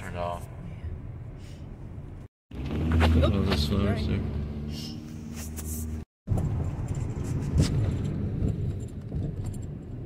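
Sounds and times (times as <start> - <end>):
road rumble in car: 0.0 - 10.0.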